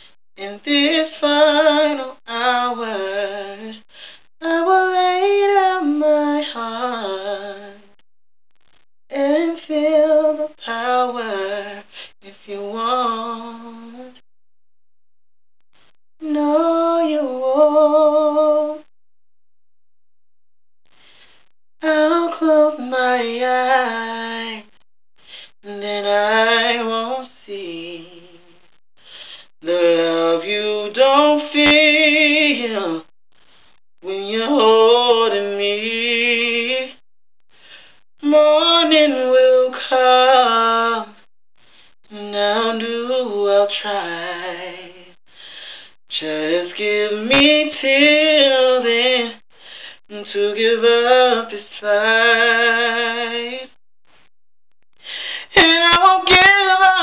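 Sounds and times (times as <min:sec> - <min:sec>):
man singing unaccompanied: 0:00.4 - 0:08.0, 0:21.8 - 0:24.8, 0:25.5 - 0:28.8, 0:29.6 - 0:33.1, 0:34.0 - 0:37.0, 0:38.2 - 0:41.3, 0:42.1 - 0:45.2, 0:46.1 - 0:49.4, 0:50.0 - 0:53.8, 0:55.4 - 0:57.0.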